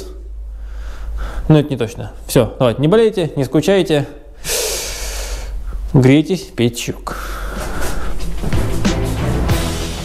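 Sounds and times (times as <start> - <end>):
breathy hiss of air: 0.5 - 1.5, 4.3 - 5.9, 7.1 - 8.4.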